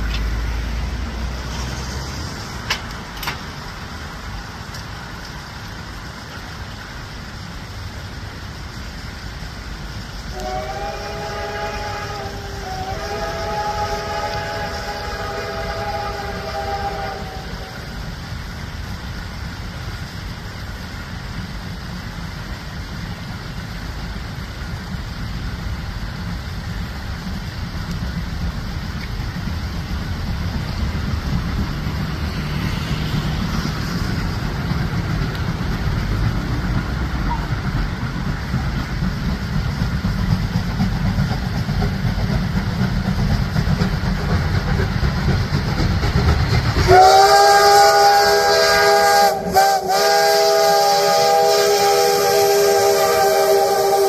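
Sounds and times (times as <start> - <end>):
train rumbling: 0.0 - 54.0
steam locomotive whistle: 10.3 - 18.2, 37.2 - 37.6, 46.7 - 54.0.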